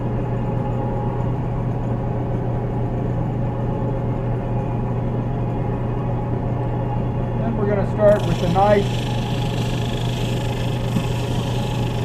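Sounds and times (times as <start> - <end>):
sander humming: 8.1 - 12.0.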